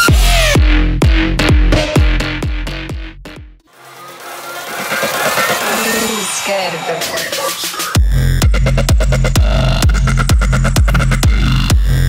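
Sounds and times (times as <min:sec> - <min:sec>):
noise riser: 0:03.7 - 0:08.0.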